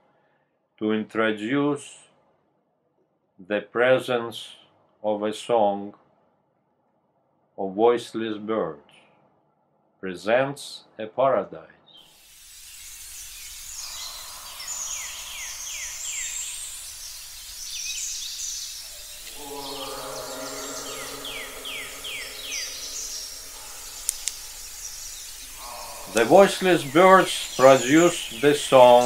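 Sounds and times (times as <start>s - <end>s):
steady hiss: 12.0s - 29.0s
bird whistling falling notes: 12.6s - 29.0s
held low chord: 18.9s - 29.0s.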